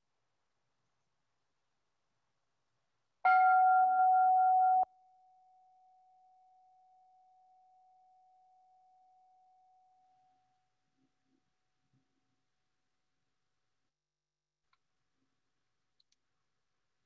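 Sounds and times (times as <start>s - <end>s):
meditation bell ringing: 3.3s - 10.5s.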